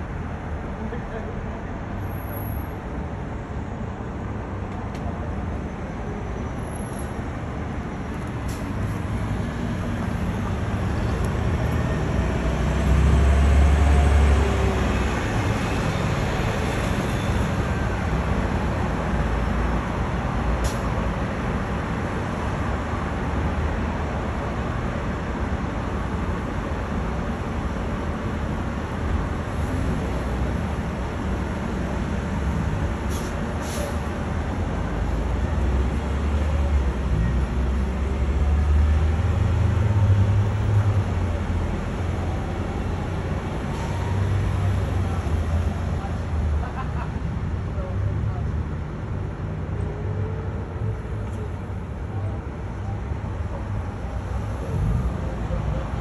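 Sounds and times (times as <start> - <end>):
city road traffic noise: 0.0 - 56.0
passing vehicles rumbling: 0.0 - 56.0.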